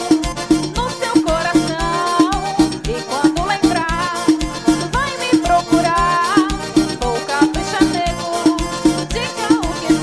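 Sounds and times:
sliding lead melody: 0.0s - 10.0s
upbeat dance music: 0.0s - 10.0s.

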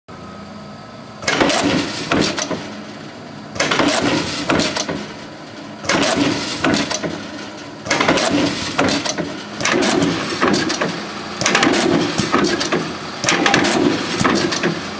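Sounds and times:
shear clattering knocks and clanks: 1.2s - 14.8s.

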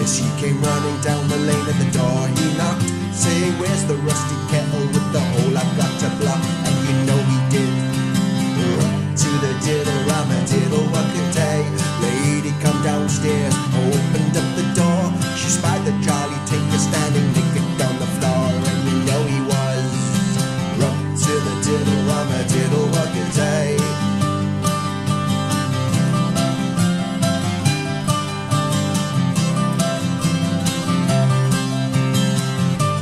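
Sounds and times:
acoustic guitar plucked notes: 0.0s - 33.0s.

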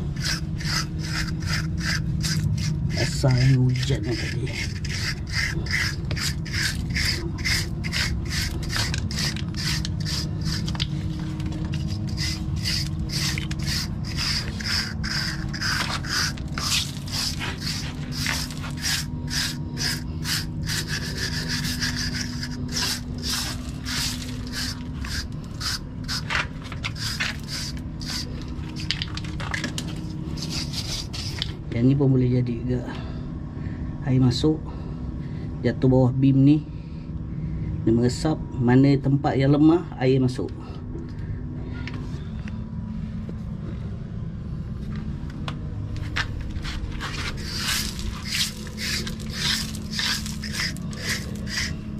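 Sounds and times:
metal scraper scraping concrete: 0.0s - 31.6s, 46.5s - 51.9s
steady low hum: 0.0s - 51.9s.

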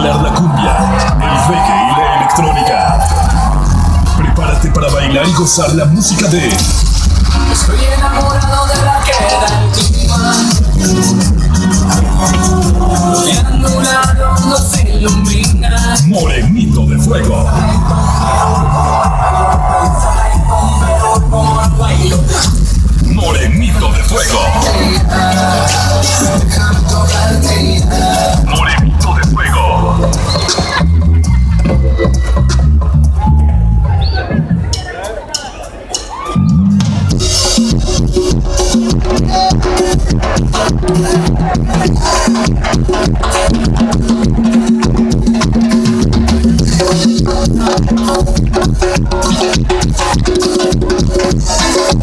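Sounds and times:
person's voice: 0.0s - 3.0s, 4.1s - 6.6s, 11.6s - 18.0s, 23.0s - 30.1s
repeating bass line: 0.0s - 34.8s
amplified live concert music: 0.0s - 52.0s.

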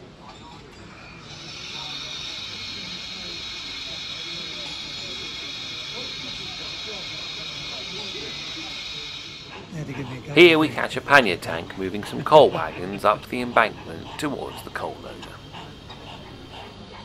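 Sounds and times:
murmur of voices: 0.0s - 17.0s
steam hissing: 1.1s - 16.9s.

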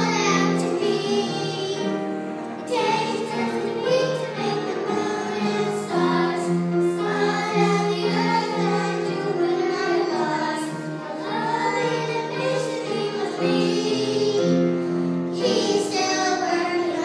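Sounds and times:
children singing gospel song: 0.0s - 17.0s.

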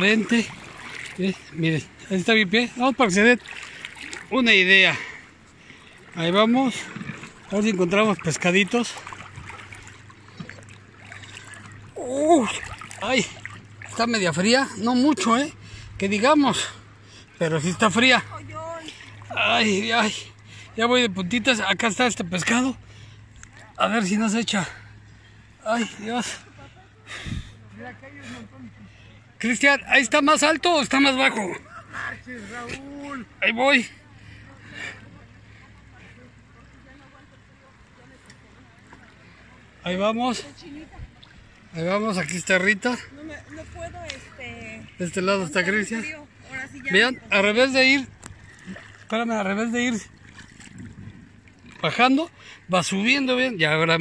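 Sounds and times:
low steady rumble: 0.0s - 54.0s
seawater lapping around legs: 0.0s - 54.0s
small water splashes: 0.0s - 54.0s
faint distant voices: 24.8s - 29.5s, 31.3s - 42.3s.

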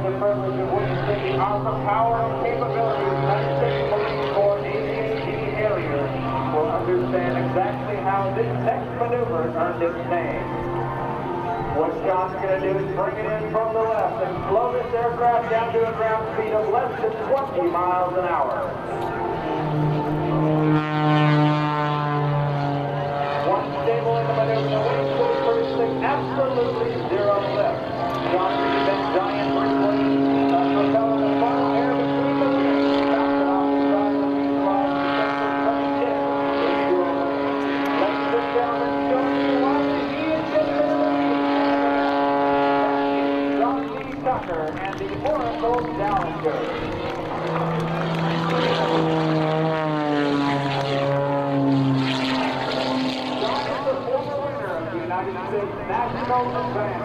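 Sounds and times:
propeller plane engine droning: 0.0s - 57.0s.

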